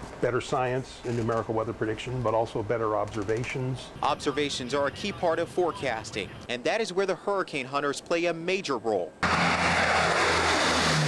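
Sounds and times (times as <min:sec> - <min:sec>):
aircraft engines roaring overhead: 0:09.2 - 0:11.0.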